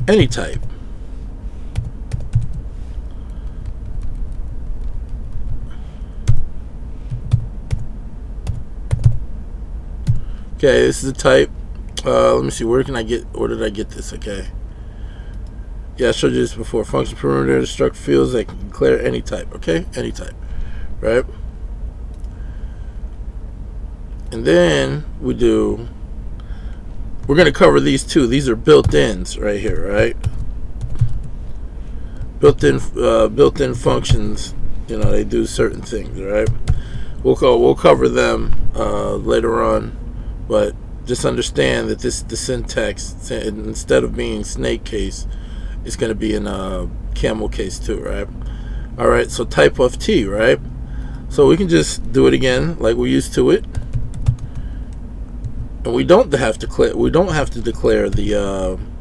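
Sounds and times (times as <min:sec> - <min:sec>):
low steady hum: 0:00.0 - 0:59.0
computer keyboard keystrokes: 0:29.7 - 0:31.2, 0:53.6 - 0:54.6
typing on computer keyboard: 0:53.8 - 0:54.6.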